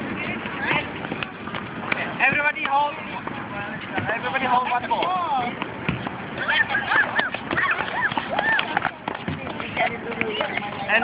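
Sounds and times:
tennis balls bouncing on hard court: 0:00.4 - 0:06.3, 0:07.1 - 0:11.0
children calling out and chattering: 0:06.2 - 0:11.0.

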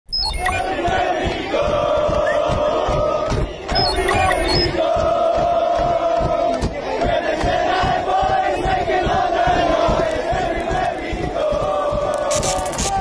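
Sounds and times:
crowd chanting: 0:00.4 - 0:13.0.

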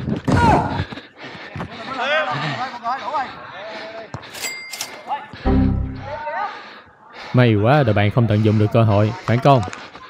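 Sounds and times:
short ringing sound effect: 0:05.5 - 0:06.2.

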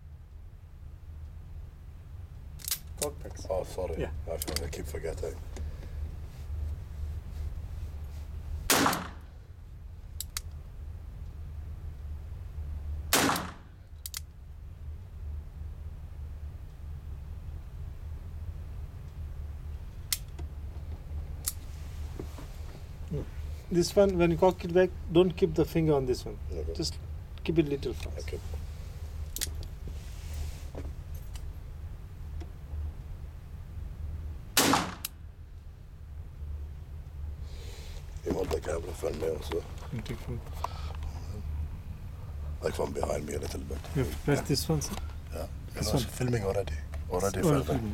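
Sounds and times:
low hum: 0:00.0 - 0:47.9
gunshots with echo: 0:08.7 - 0:09.2, 0:13.1 - 0:13.7, 0:34.6 - 0:35.0.

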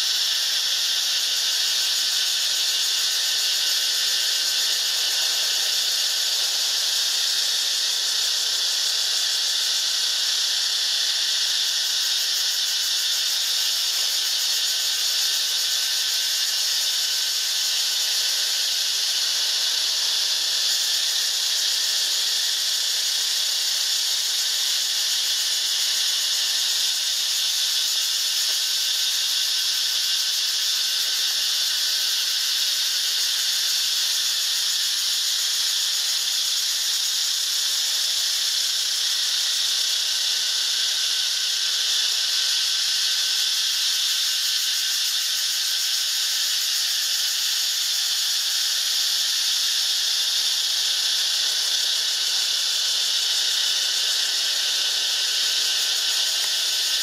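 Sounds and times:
insects buzzing: 0:00.0 - 0:57.0.

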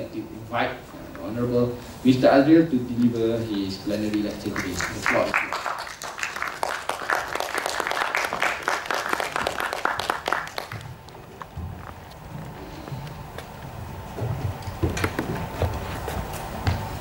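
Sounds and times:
audience applauding: 0:04.4 - 0:11.2
footsteps on wooden stage: 0:08.2 - 0:17.0.

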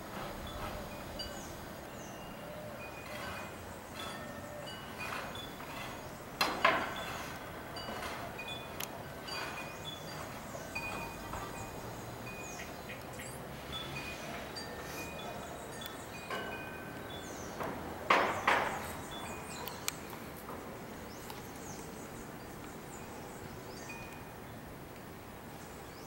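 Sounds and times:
wind chimes tinkling: 0:00.2 - 0:20.0, 0:22.9 - 0:24.4.

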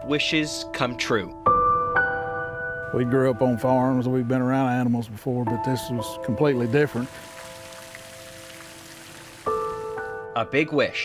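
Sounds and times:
soft background music: 0:00.0 - 0:11.0
water droplets pattering: 0:06.3 - 0:10.1.

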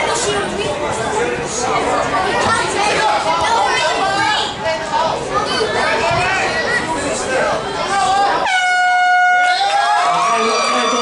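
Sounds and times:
air horn blast: 0:08.4 - 0:10.1.

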